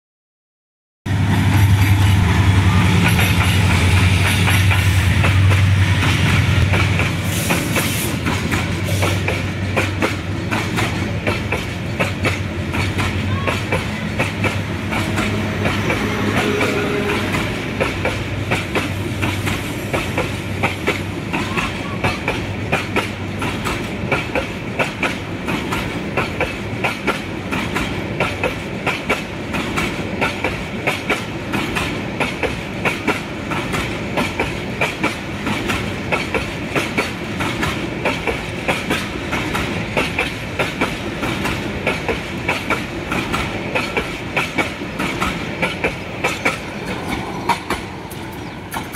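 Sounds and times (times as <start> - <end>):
train rolling rumble: 1.1 - 48.9
train wheels clacking over rail joints: 3.0 - 48.9.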